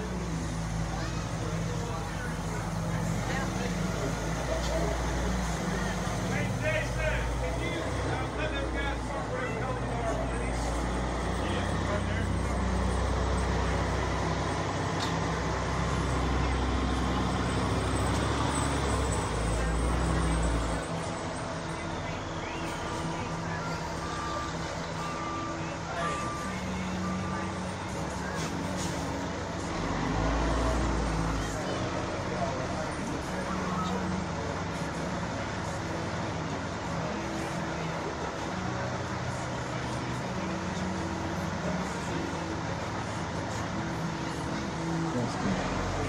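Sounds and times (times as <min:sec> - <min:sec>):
indistinct voices: 0:00.0 - 0:46.0
motor vehicles rumbling: 0:00.0 - 0:46.0.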